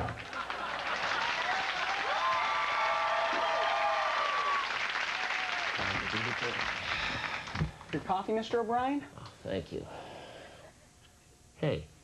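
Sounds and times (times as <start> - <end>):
people cheering: 0.0 - 7.6
audience applauding: 0.0 - 7.8.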